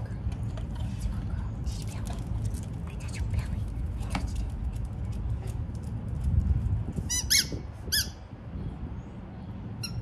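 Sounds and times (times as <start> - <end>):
rubber dog toy squeaking: 7.1 - 8.2.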